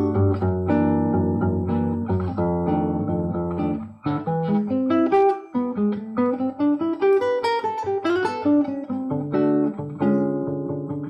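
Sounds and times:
classical guitar fingerstyle: 0.0 - 11.0.

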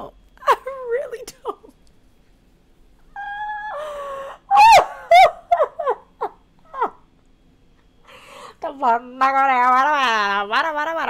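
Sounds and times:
woman squealing laughter: 3.2 - 7.0.

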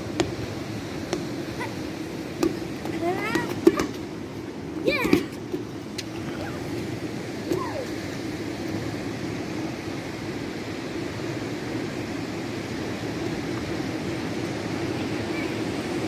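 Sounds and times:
rushing outdoor background noise: 0.0 - 16.0
child calling: 3.0 - 3.9, 4.8 - 5.4, 7.5 - 8.0.

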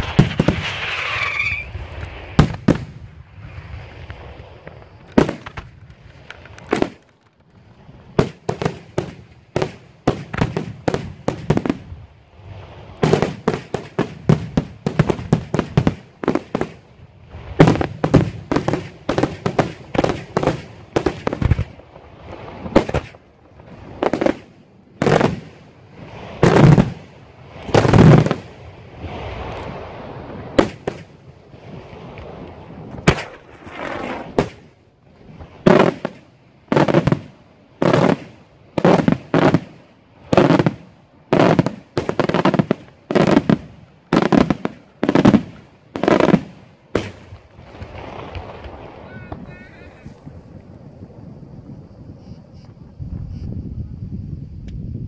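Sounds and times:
heavy fireworks booms: 0.0 - 7.0, 7.6 - 52.2
fireworks bursting with sharp bangs: 0.0 - 53.4.

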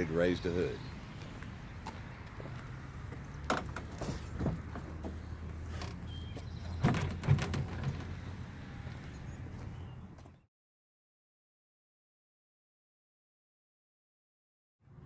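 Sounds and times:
truck hood knocks and clunks: 3.4 - 8.4.

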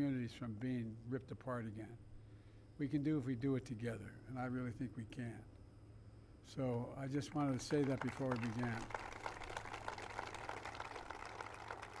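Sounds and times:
steady low hum: 0.0 - 12.0
audience applause: 7.4 - 12.0.

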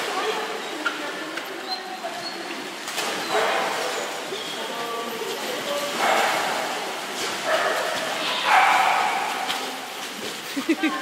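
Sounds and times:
dog barking: 3.3 - 3.8, 7.5 - 9.5.

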